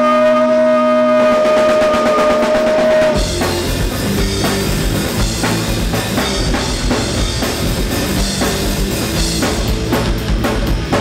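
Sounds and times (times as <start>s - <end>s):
fast drum roll: 1.2s - 11.0s
punk rock band playing live: 1.2s - 11.0s.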